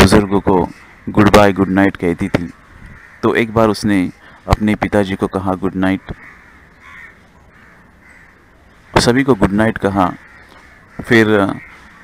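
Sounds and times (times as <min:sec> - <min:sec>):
crows cawing: 0:00.0 - 0:12.0.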